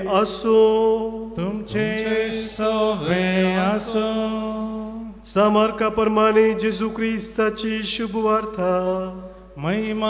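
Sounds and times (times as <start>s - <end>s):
priest chanting: 0.0s - 10.0s.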